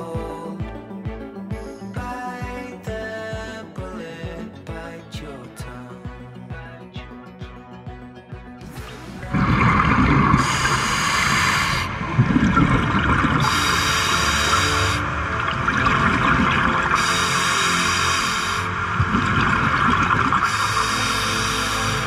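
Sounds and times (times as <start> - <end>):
background music: 0.0 - 22.0
bubbly exhalations rumbling: 8.7 - 17.2, 18.8 - 20.9
regulator hiss with breath: 10.4 - 12.0, 13.4 - 15.1, 16.8 - 18.8, 20.4 - 22.0.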